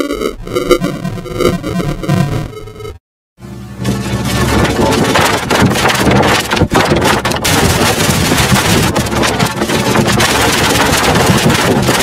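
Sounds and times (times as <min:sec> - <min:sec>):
harsh distorted noise: 0:00.0 - 0:12.0.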